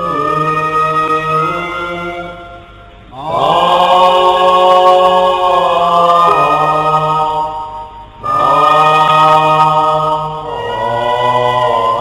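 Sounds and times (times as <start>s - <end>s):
slow sustained chanting: 0.0s - 12.0s.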